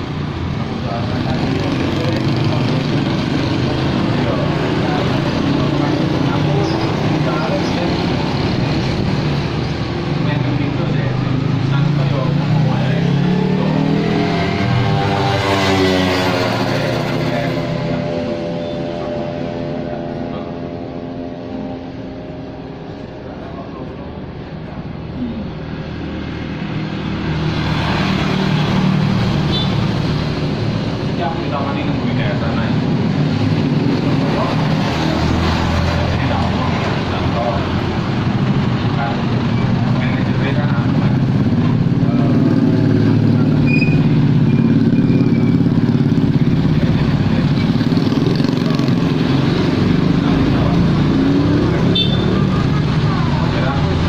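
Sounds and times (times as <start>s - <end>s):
road traffic passing: 0.0s - 54.0s
vehicle passing close: 0.0s - 54.0s.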